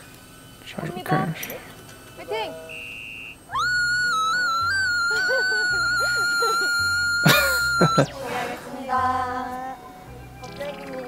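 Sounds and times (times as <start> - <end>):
long high swooping tone: 2.7 - 9.1.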